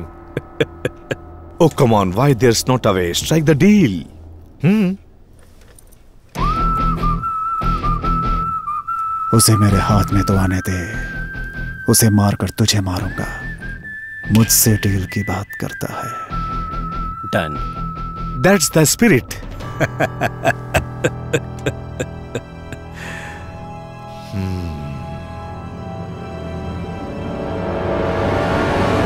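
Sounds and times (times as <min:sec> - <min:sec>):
man laughing: 0:00.0 - 0:01.4, 0:19.6 - 0:23.2
steady low hum: 0:00.0 - 0:06.8
whistled tune: 0:06.4 - 0:27.4.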